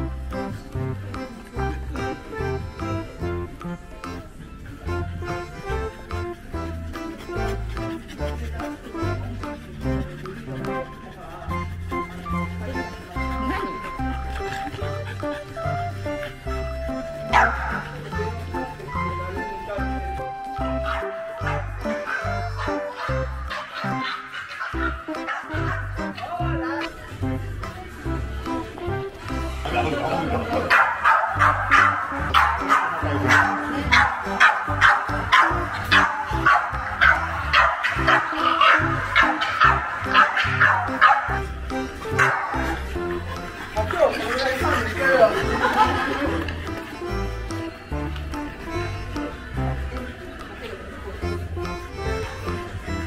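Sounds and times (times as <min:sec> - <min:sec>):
background music with bass line: 0:11.5 - 0:50.1
dog barking: 0:17.3 - 0:17.9, 0:20.8 - 0:25.9, 0:30.7 - 0:41.4, 0:42.1 - 0:42.8.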